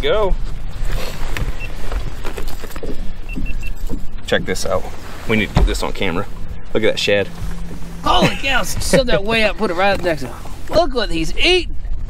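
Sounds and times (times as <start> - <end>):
wind buffeting microphone: 0.0 - 12.0
rustling and clatter on deck: 0.4 - 6.4.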